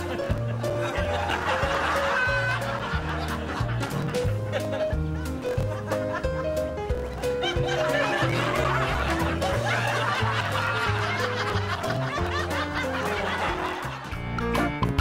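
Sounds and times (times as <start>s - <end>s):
many people laughing: 0.0s - 14.2s
light comedic music: 0.0s - 15.0s.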